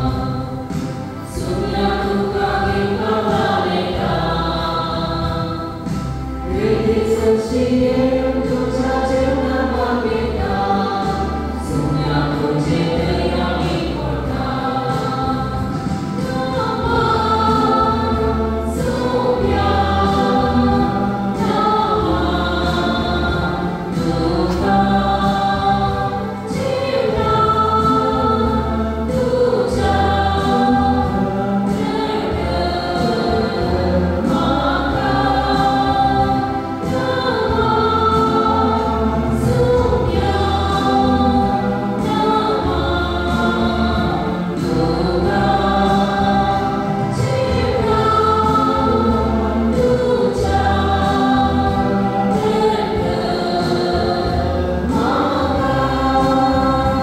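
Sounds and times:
choir singing a hymn: 0:00.0 - 0:57.0
instrumental accompaniment: 0:00.0 - 0:57.0.

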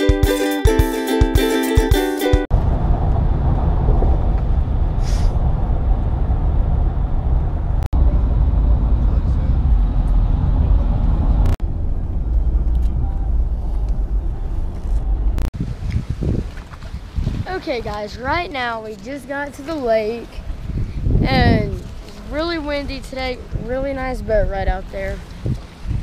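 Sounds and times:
car engine and road rumble: 0:02.5 - 0:17.8.

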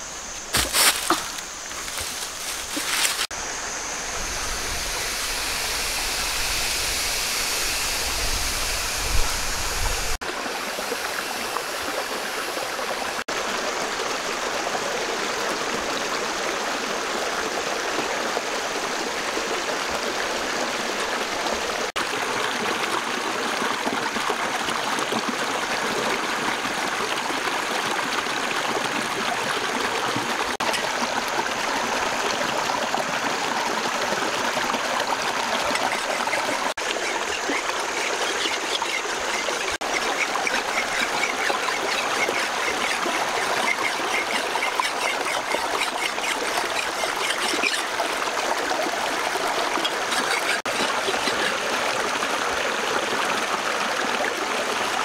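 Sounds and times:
stream rushing over stones: 0:00.0 - 0:55.0.

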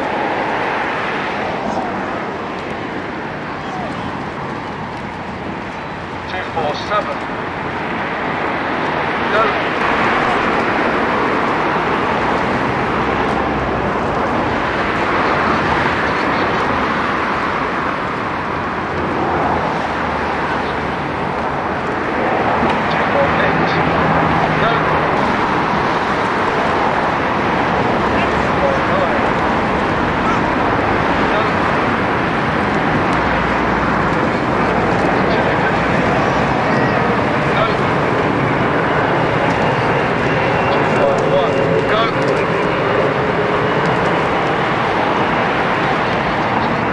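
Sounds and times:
traffic noise: 0:00.0 - 0:46.9
indistinct voices: 0:00.9 - 0:04.7, 0:19.0 - 0:46.9.

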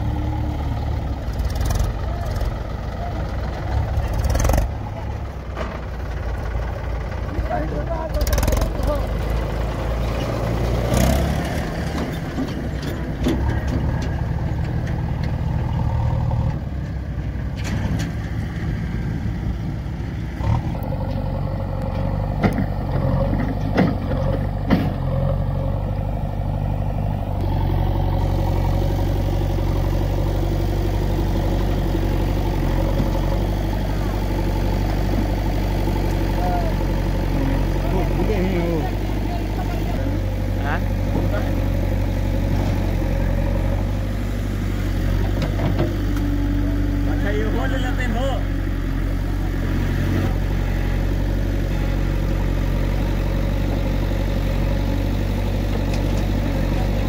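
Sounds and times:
diesel engines running: 0:00.0 - 0:57.0
backhoe digging soil: 0:55.0 - 0:57.0.

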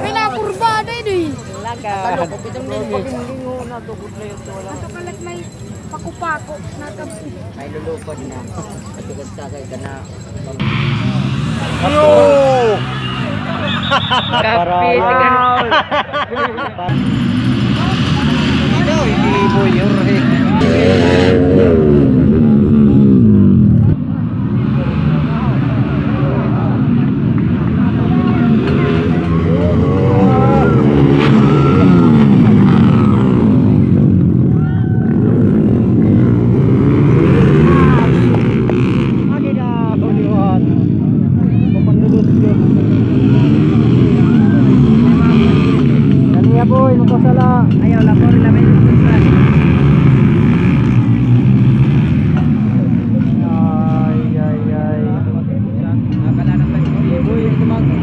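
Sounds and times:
crowd talking and shouting: 0:00.0 - 0:58.0
motorbike engines revving and passing: 0:00.0 - 0:58.0.

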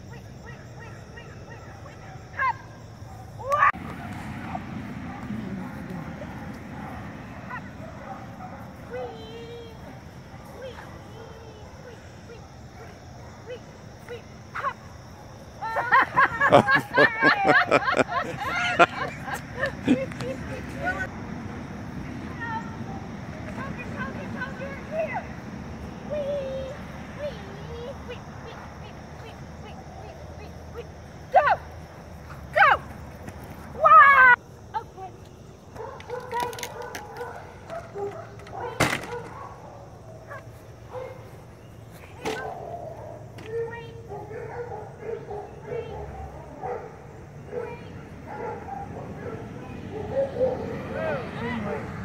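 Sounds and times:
dog barking: 0:04.0 - 0:09.0, 0:10.3 - 0:13.5, 0:35.8 - 0:41.3, 0:42.3 - 0:43.3, 0:44.1 - 0:51.9.

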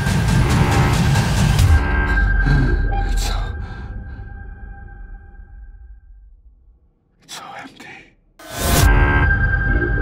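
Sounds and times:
man whispering: 0:03.0 - 0:03.8, 0:07.2 - 0:08.4.

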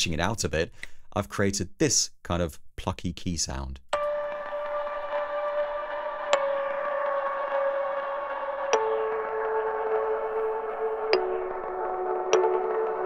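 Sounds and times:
plucky synthesized key notes: 0:04.0 - 0:13.0.

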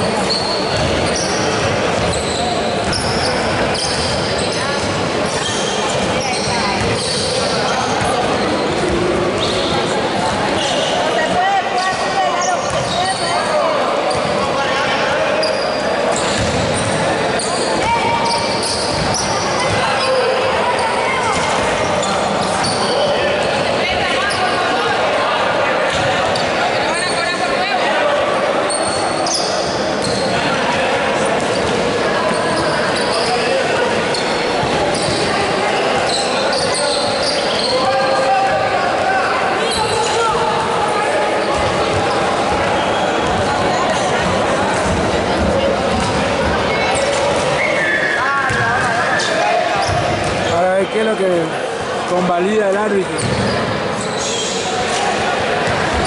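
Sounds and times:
sneaker squeaks: 0:00.0 - 0:24.9, 0:25.9 - 0:27.6, 0:28.7 - 0:51.2, 0:52.1 - 0:56.0
people calling and chattering: 0:00.0 - 0:56.0
basketball bouncing on wooden court: 0:06.8 - 0:07.0, 0:16.3 - 0:16.9, 0:48.5 - 0:48.9.

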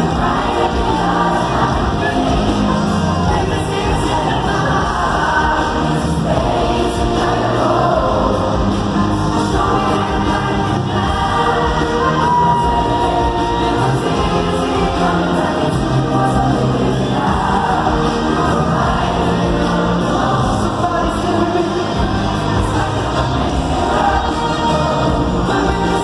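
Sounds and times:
crowd singing together: 0:00.0 - 0:26.0
live pop band playing: 0:00.0 - 0:26.0.

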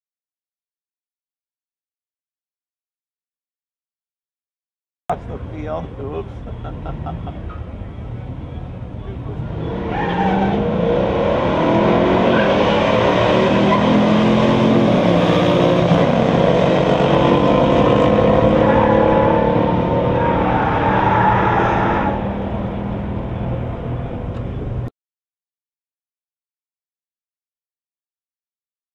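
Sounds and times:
cars accelerating at full throttle: 0:06.3 - 0:24.8.

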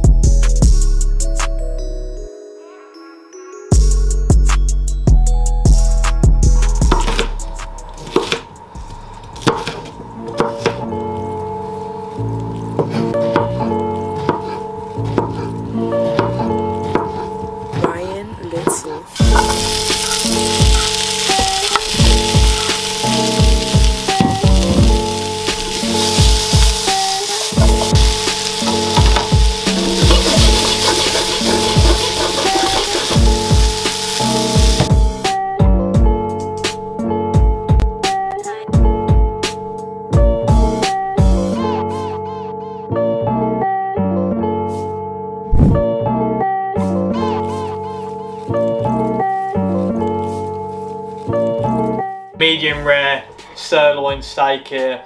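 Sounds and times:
background music with steady beat: 0:00.0 - 0:01.9, 0:03.7 - 0:11.2, 0:12.8 - 0:42.5
vegetables sizzling in frying pan: 0:19.1 - 0:35.0.

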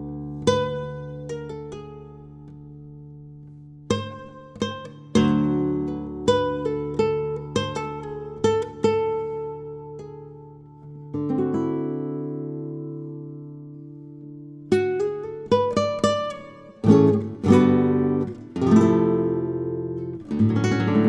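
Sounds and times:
fingerstyle flamenco guitar: 0:00.0 - 0:21.0.

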